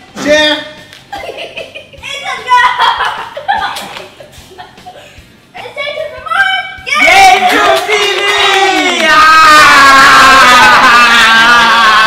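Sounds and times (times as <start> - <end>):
people yelling together: 6.9 - 12.0.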